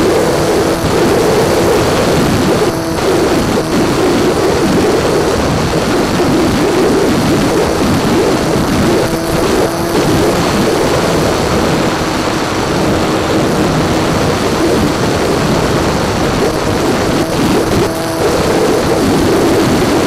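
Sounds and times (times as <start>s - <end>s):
electric motor and propeller: 0.0s - 20.0s
faint motor whine: 0.0s - 20.0s
heavy wind rush: 0.0s - 20.0s.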